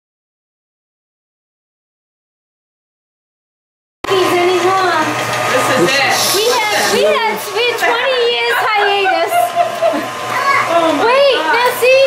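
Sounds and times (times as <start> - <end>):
stand mixer humming: 4.1 - 12.0
children chattering: 4.2 - 12.0.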